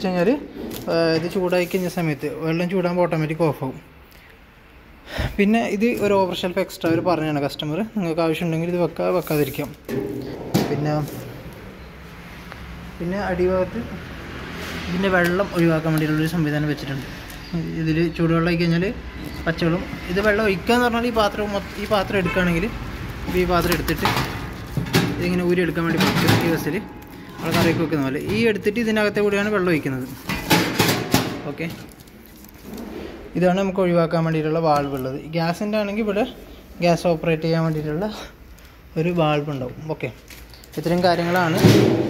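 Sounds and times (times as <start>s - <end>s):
man speaking: 0.0s - 4.0s, 5.2s - 9.9s, 10.6s - 11.4s, 13.0s - 14.1s, 14.8s - 24.3s, 25.2s - 30.2s, 33.3s - 40.2s, 40.8s - 41.8s
plastic film crinkling: 9.0s - 9.9s, 14.7s - 18.0s, 19.1s - 27.2s, 31.5s - 32.9s, 39.9s - 41.5s.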